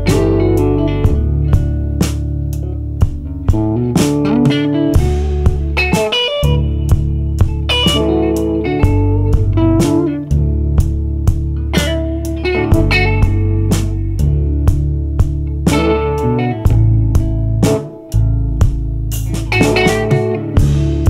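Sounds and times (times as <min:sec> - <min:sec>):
bass: 0:00.0 - 0:21.0
drum kit steady beat: 0:00.0 - 0:21.0
electric guitar bluesy line: 0:00.0 - 0:21.0.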